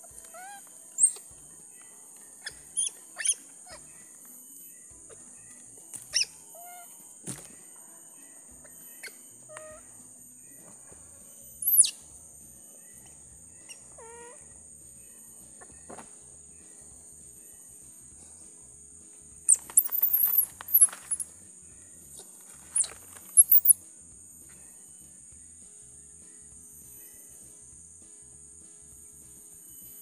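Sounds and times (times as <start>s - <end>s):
baby monkey squealing: 0.0s - 1.3s, 2.4s - 3.9s, 6.1s - 6.9s, 8.6s - 9.9s, 11.6s - 12.0s, 13.6s - 14.5s, 19.5s - 21.3s, 22.8s - 23.8s
insect chorus: 0.0s - 30.0s.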